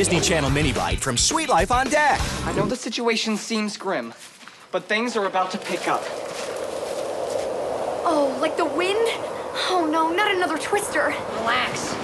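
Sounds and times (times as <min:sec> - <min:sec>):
rushing wind: 0:05.1 - 0:12.0.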